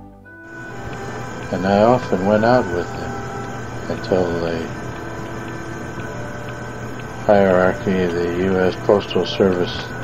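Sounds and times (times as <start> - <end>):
low hum: 0.0 - 10.0
tape hiss: 0.0 - 10.0
thin high whine: 0.0 - 10.0
faint ticks: 0.5 - 10.0.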